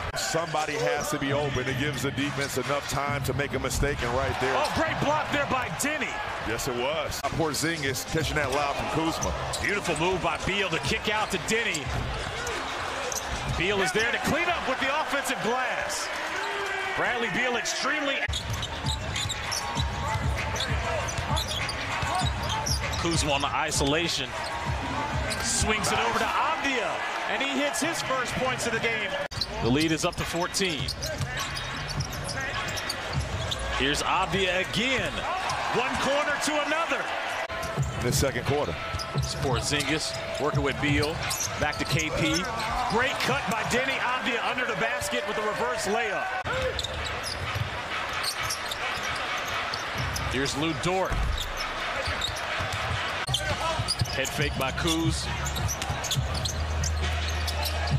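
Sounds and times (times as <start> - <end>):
crowd noise: 0.0 - 57.9
sneaker squeaks: 8.2 - 14.4, 18.2 - 23.3, 29.2 - 35.9, 38.7 - 43.8, 46.4 - 57.9.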